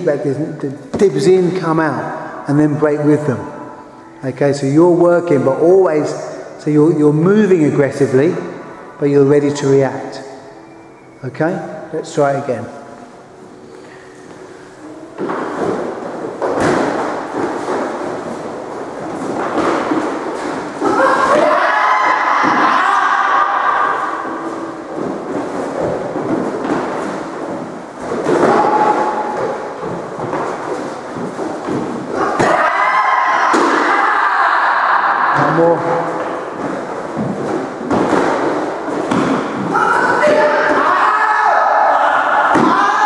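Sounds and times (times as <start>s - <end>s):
footwork thuds on wooden floor: 24.9s - 32.6s, 36.2s - 40.5s.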